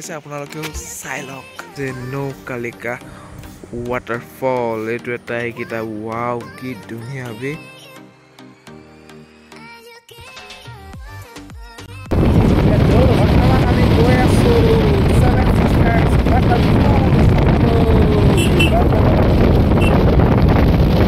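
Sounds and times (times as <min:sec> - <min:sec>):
quiet music: 0:00.0 - 0:11.4
motorcycle running: 0:12.1 - 0:21.0
wind rushing over microphone: 0:12.1 - 0:21.0.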